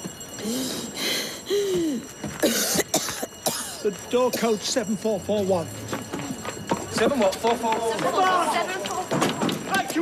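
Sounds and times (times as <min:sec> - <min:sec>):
person coughing: 0:02.4 - 0:04.6.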